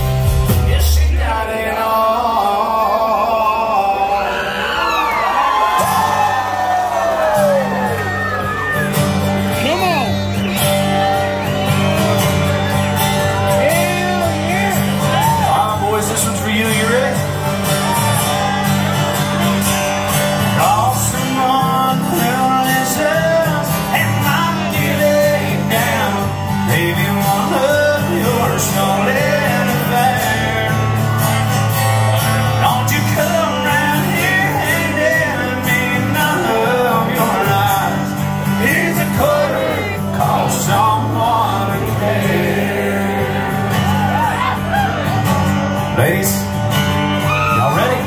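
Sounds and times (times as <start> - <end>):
electric bass: 0.0 - 1.4
drums: 0.0 - 2.5, 5.7 - 48.0
man singing: 0.0 - 4.9, 13.3 - 17.5, 20.4 - 31.6, 32.2 - 48.0
acoustic guitar: 0.0 - 48.0
steel guitar: 7.3 - 48.0.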